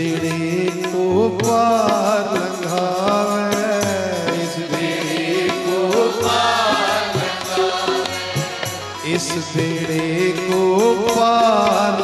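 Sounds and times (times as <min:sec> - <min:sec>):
man singing a chant: 0:00.0 - 0:07.7, 0:09.0 - 0:12.0
musical accompaniment: 0:00.0 - 0:12.0.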